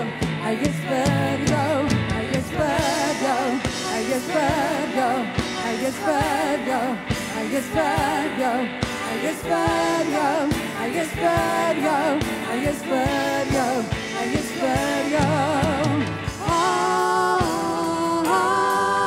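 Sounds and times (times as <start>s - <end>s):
drum kit beat: 0.0s - 19.0s
women singing with vibrato: 0.0s - 19.0s.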